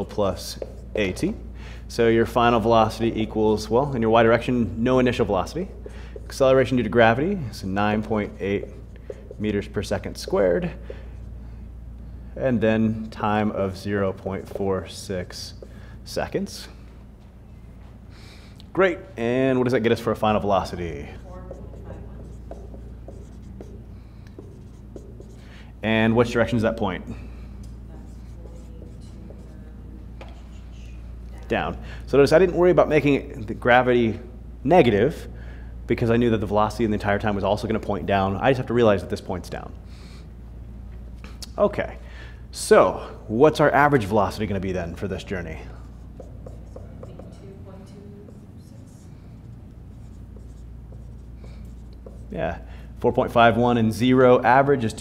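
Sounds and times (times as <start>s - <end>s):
marker writing on whiteboard: 0.0s - 1.4s, 4.3s - 7.0s, 7.7s - 11.4s, 13.4s - 15.9s, 20.0s - 25.6s, 27.6s - 31.0s, 44.0s - 52.6s
low room hum: 0.0s - 55.0s.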